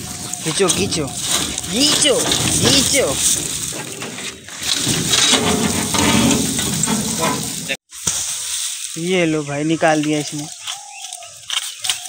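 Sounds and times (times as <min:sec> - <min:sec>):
indistinct voices: 0:00.0 - 0:07.8
metal mesh sieve scraping: 0:00.0 - 0:07.8
dry straw rustling: 0:00.0 - 0:12.0.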